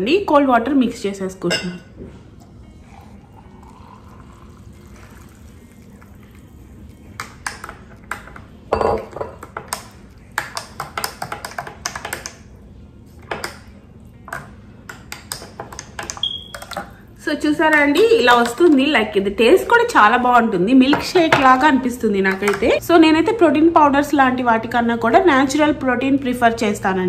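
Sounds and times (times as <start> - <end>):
water poured into glass: 2.8 - 6.7.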